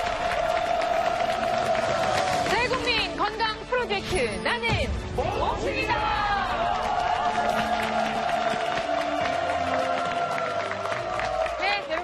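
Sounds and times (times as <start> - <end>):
audience clapping and cheering: 0.0 - 3.7, 5.8 - 12.0.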